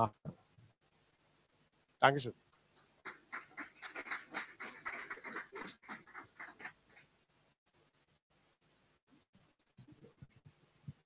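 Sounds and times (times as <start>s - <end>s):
faint audience applause: 3.1s - 7.1s.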